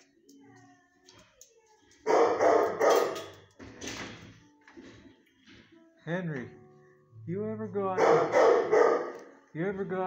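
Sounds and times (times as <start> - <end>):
dog barking: 2.1 - 3.3, 8.0 - 9.2.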